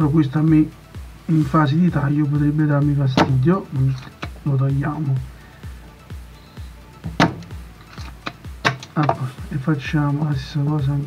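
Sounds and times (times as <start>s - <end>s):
background music: 0.0s - 11.0s
desoldering pump snap: 7.1s - 9.2s.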